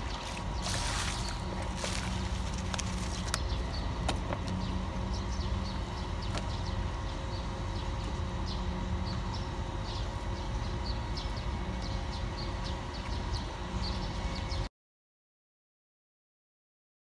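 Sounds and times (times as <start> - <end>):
faint constant hum: 0.0 - 14.7.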